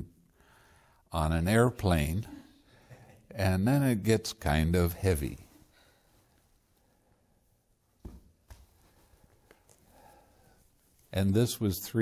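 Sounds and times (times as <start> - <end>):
soft knocks of book handled: 8.0 - 9.8.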